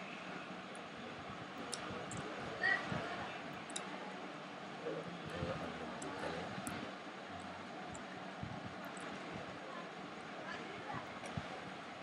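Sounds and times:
background room noise: 0:00.0 - 0:12.0
faint indistinct voices: 0:00.0 - 0:12.0.

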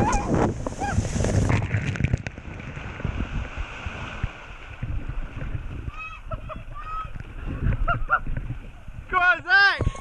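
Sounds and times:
water rushing and splashing: 0:00.0 - 0:10.0.

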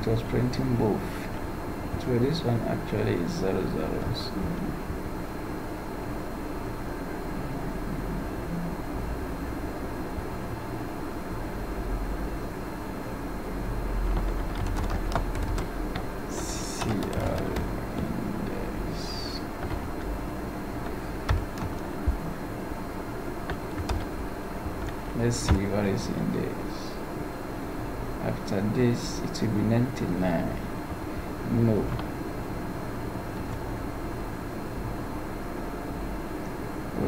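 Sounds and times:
low background hum: 0:00.0 - 0:37.0
keyboard typing: 0:14.0 - 0:22.5, 0:23.4 - 0:25.8.

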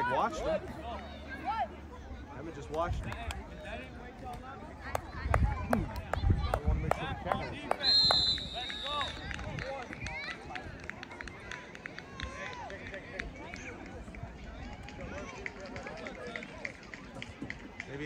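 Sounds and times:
distant shouting and chatter: 0:00.0 - 0:18.0
referee's whistle blast: 0:07.8 - 0:09.3.

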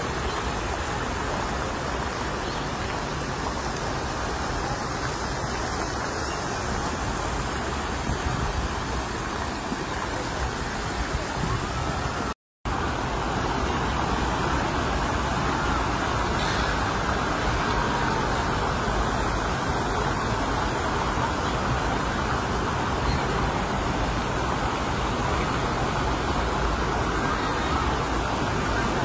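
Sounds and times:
road traffic rumble and hiss: 0:00.0 - 0:29.0.

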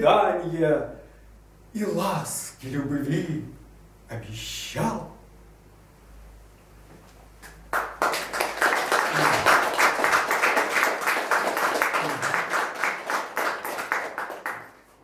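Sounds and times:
audience applauding: 0:07.4 - 0:15.0.

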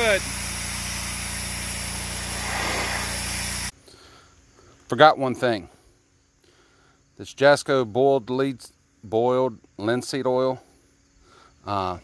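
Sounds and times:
high-pressure spray hissing on wood: 0:00.0 - 0:03.8.

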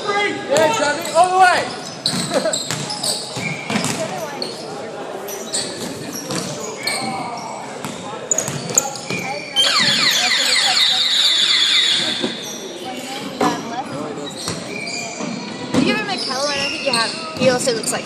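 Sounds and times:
sneaker squeaks: 0:00.7 - 0:17.8
players calling out: 0:09.0 - 0:12.7.

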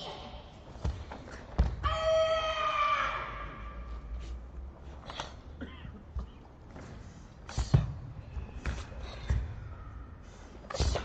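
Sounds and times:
high-pitched kiai shout: 0:01.8 - 0:03.8.

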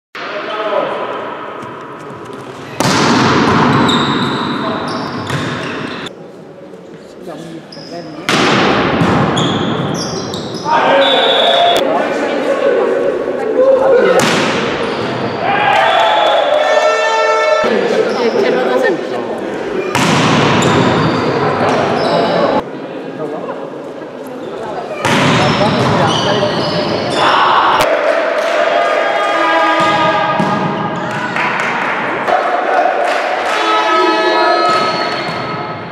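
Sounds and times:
players' voices: 0:00.2 - 0:35.2
volleyball impacts: 0:02.4 - 0:04.2, 0:05.2 - 0:05.8, 0:08.3 - 0:10.0, 0:14.2 - 0:14.9, 0:19.9 - 0:21.8, 0:25.0 - 0:26.1, 0:29.8 - 0:31.7
volleyball contacts echoing: 0:02.6 - 0:06.1, 0:19.8 - 0:22.1, 0:34.6 - 0:35.9
players shouting: 0:10.6 - 0:18.2, 0:25.5 - 0:35.2.

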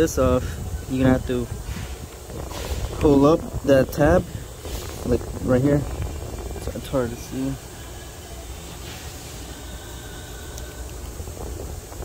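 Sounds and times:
light even hiss: 0:00.0 - 0:12.0
low rumble: 0:00.0 - 0:12.0.

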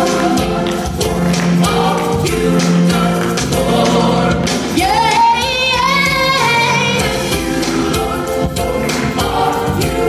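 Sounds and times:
gospel music with singing: 0:00.0 - 0:10.0.

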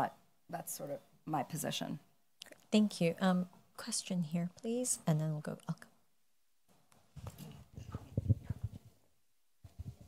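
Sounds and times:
microphone handling thumps: 0:07.0 - 0:09.0.

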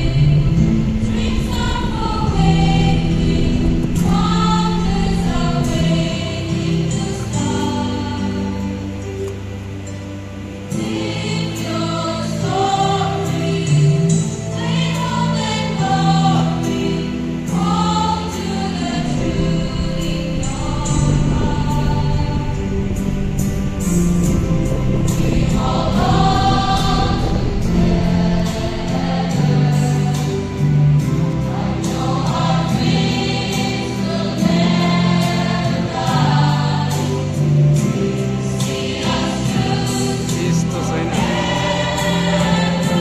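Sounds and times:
choir singing: 0:00.0 - 0:43.0.

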